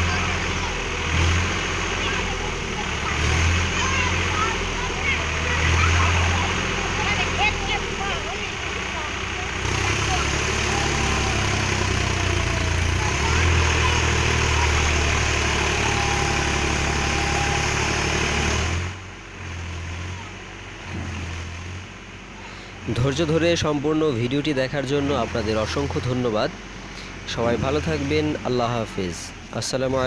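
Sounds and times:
tractor engine running: 0:00.0 - 0:30.0.

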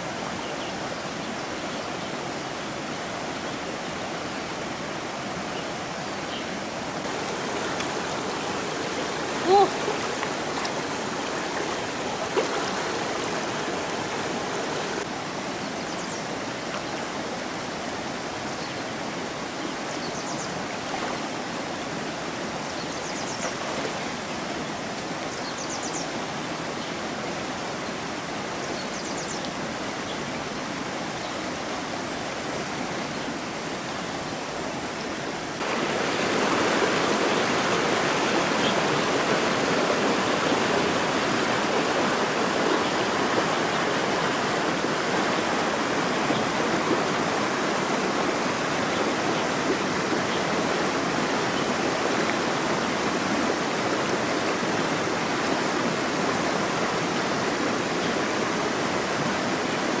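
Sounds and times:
river rushing over stones: 0:00.0 - 1:00.0.

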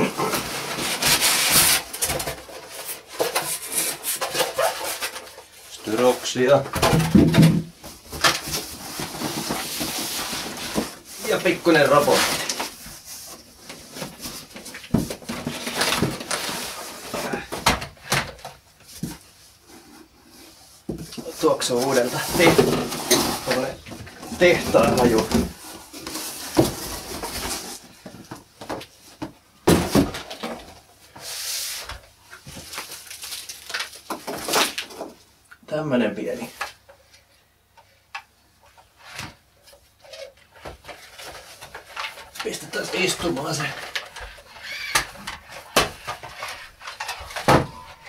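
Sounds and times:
cardboard rustling and scraping: 0:00.0 - 0:35.2, 0:38.7 - 0:48.0.

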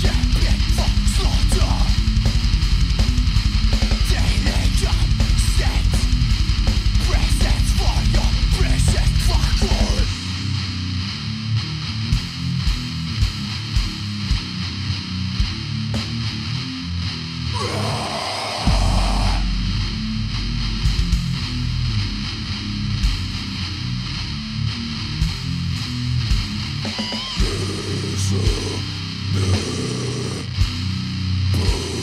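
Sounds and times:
instrumental death metal: 0:00.0 - 0:32.0.

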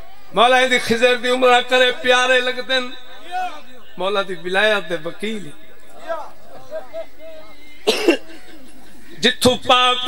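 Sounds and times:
man coughing: 0:07.8 - 0:08.6.

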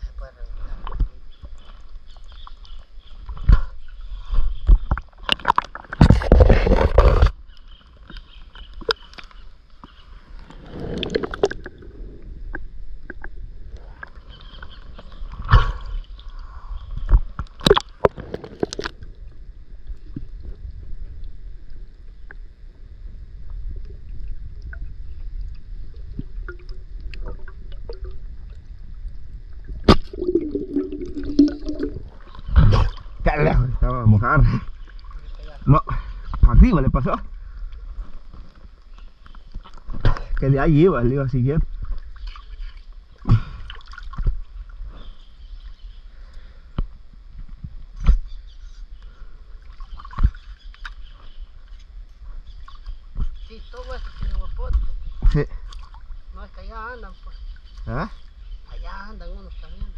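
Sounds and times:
river water sloshing and gurgling: 0:01.0 - 0:21.4, 0:24.0 - 0:33.2, 0:41.7 - 0:45.7, 0:49.0 - 0:56.4
loud water splash: 0:29.9 - 0:32.9.

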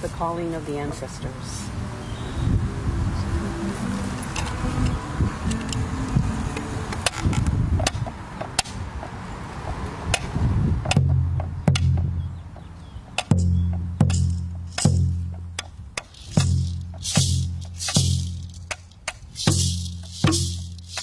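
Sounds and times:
hand drum booming beats: 0:13.3 - 0:18.7, 0:19.4 - 0:21.0.

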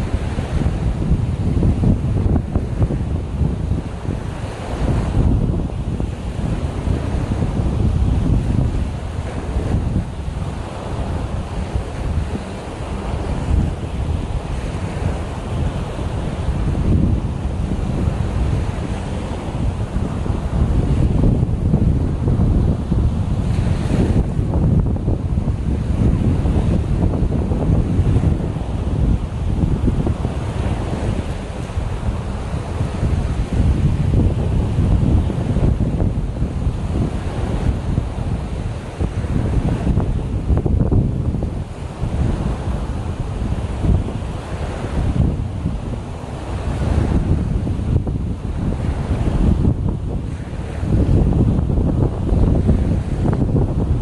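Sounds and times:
waves breaking on shore: 0:00.0 - 0:54.0
wind buffeting microphone: 0:00.0 - 0:54.0.

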